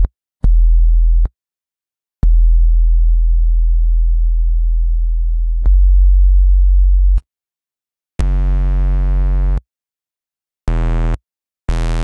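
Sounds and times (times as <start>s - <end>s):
deep synthesized sub-bass notes: 2.2s - 7.2s.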